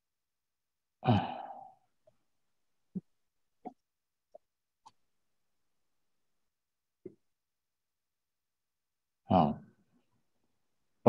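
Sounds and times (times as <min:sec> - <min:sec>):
man sighing: 0:01.0 - 0:01.8.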